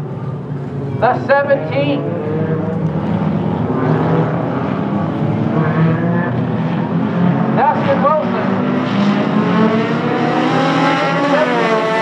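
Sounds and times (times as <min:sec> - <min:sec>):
race car engines droning: 0:00.0 - 0:12.0
race car engines revving: 0:00.0 - 0:12.0.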